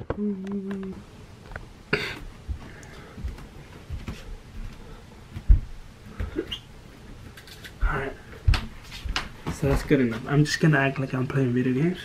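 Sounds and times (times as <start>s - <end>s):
footsteps on wooden floor: 2.2s - 10.3s.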